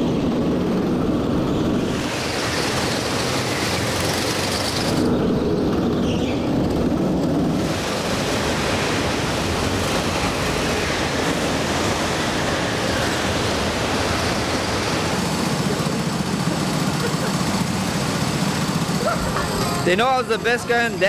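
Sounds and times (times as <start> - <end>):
go-kart engine running: 0.8 - 21.0.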